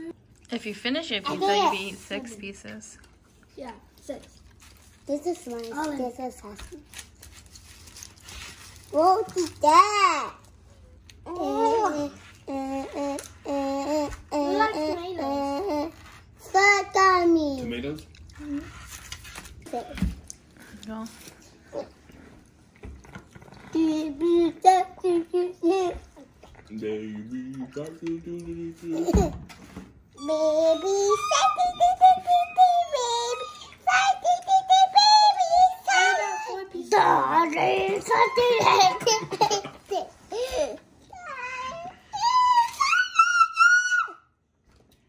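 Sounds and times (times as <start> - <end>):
child singing a high note: 30.2 - 36.6.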